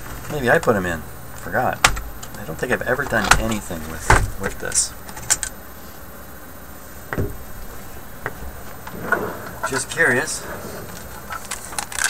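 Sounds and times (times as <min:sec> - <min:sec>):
dull knock: 0:07.1 - 0:07.5.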